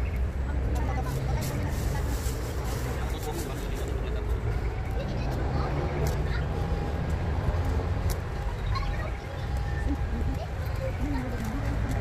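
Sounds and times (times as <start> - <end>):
low city rumble: 0.0 - 12.0
faint voices: 0.3 - 12.0.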